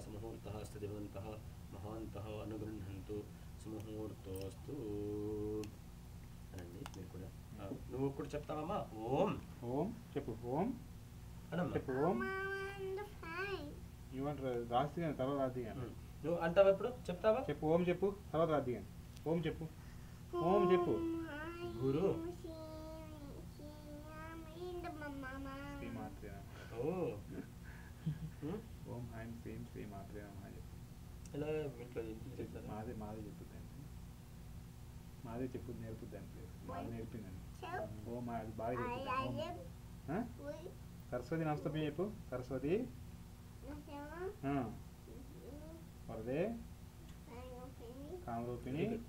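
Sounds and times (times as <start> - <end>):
high-pitched voice chanting: 20.3 - 22.2.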